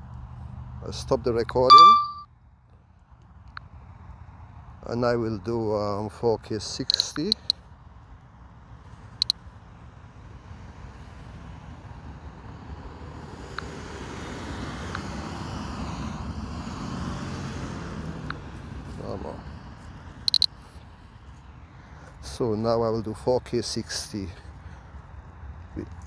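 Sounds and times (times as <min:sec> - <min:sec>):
vehicle passing by: 0:10.0 - 0:22.3.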